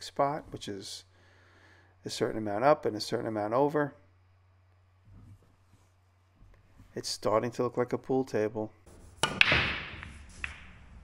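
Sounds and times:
cue hitting cue ball: 9.1 - 11.0
pool ball click: 9.2 - 10.9
pool balls cracking and scattering: 9.2 - 11.0.

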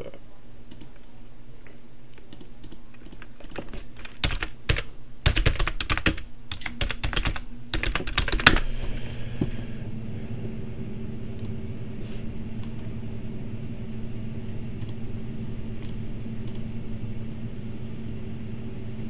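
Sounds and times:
typing on computer keyboard: 0.7 - 1.0, 2.2 - 8.6.

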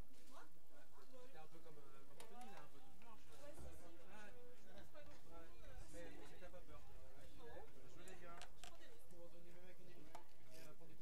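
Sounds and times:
distant people talking: 0.3 - 11.0.

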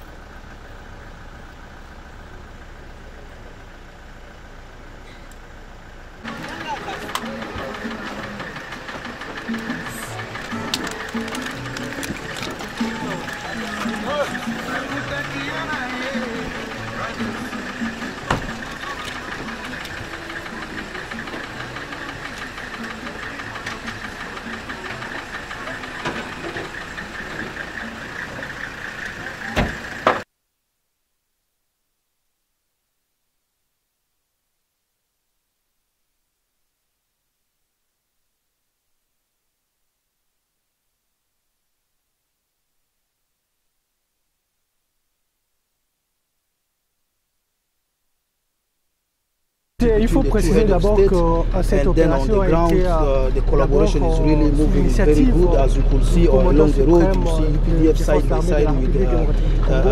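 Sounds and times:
vehicle engine idling: 0.0 - 30.3, 49.8 - 59.9
people's voices: 6.2 - 30.2, 49.8 - 59.9.

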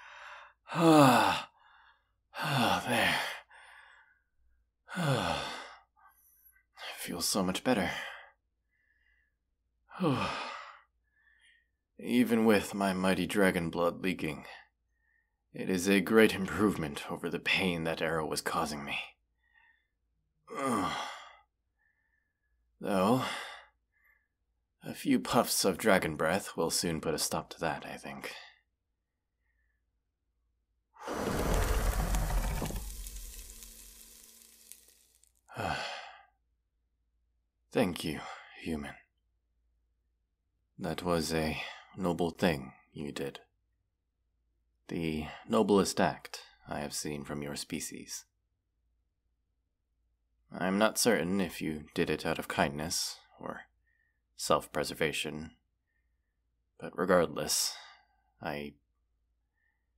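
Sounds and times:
man sighing: 0.7 - 1.4
flame rush with deep rumble: 31.0 - 35.2.

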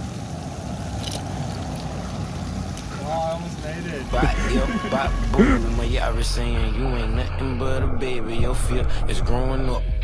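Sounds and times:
rushing outdoor background noise: 0.0 - 9.6.

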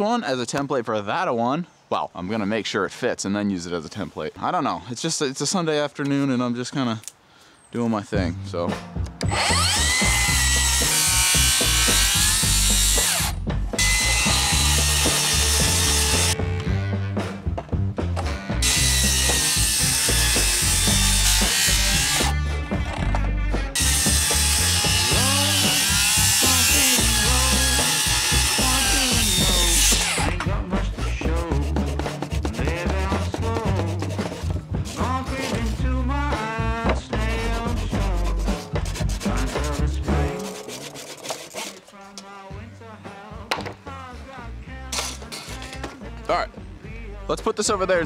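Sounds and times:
background music: 7.8 - 48.0
circular saw cutting wood: 9.2 - 16.4, 18.6 - 22.4, 23.7 - 30.4, 38.2 - 42.0.

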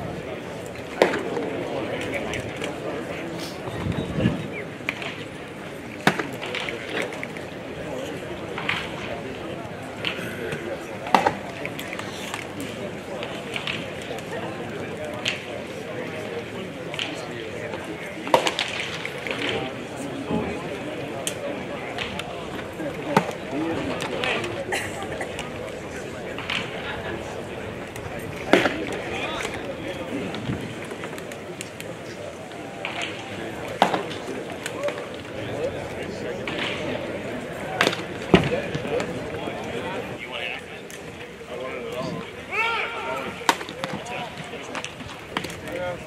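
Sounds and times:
background chatter of voices: 0.0 - 46.0
baseball impacts: 27.9 - 31.1.

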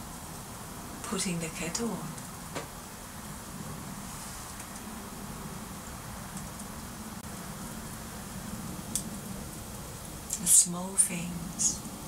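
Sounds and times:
kettle hissing: 0.0 - 12.0.

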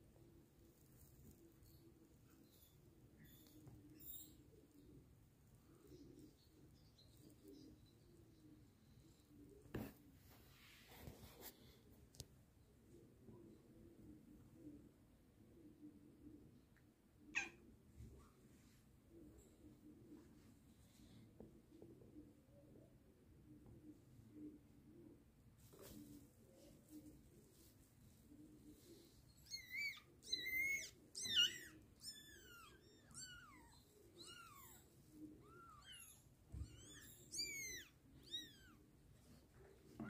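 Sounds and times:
cat meowing: 17.3 - 17.6, 29.5 - 34.8.

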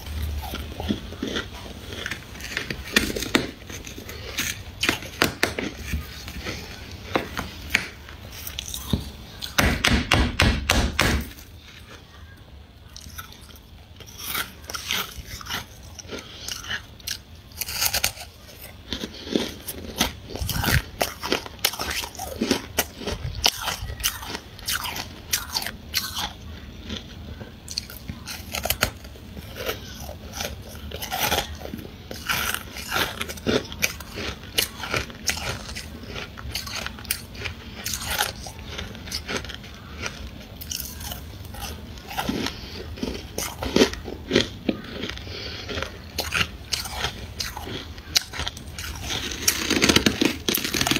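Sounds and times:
frost being chewed crunching: 0.0 - 9.6, 11.2 - 50.9.

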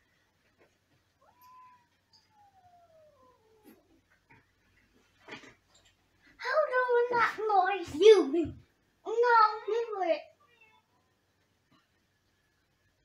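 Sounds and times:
cat meowing: 1.2 - 3.9.

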